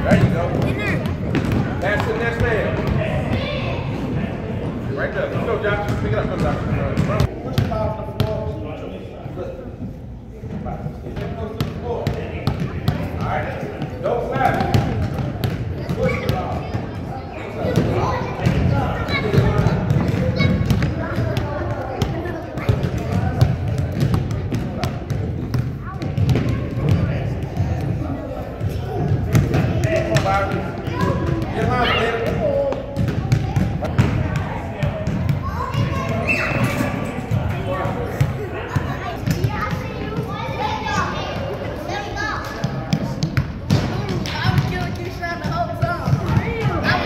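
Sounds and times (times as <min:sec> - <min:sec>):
basketballs bouncing on wooden floor: 0:00.1 - 0:03.5, 0:05.8 - 0:08.4, 0:11.2 - 0:13.9, 0:14.5 - 0:16.9, 0:17.6 - 0:28.0, 0:28.9 - 0:36.3, 0:42.6 - 0:47.0.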